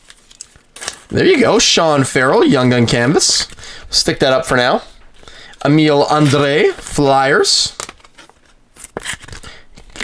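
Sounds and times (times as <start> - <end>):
card clicks and rustles: 7.7 - 10.0.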